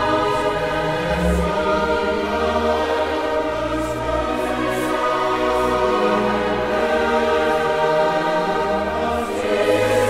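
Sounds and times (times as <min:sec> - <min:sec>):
choir singing sustained chords: 0:00.0 - 0:10.0.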